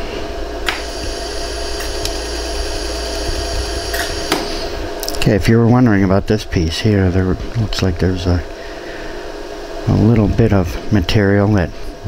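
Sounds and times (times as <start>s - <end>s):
laser welder humming: 0.1s - 5.2s
sharp laser pulse clicks: 0.7s - 4.4s.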